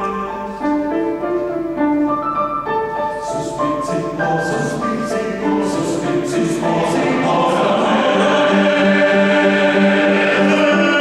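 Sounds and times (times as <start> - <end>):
choir singing held chords: 3.2 - 11.0.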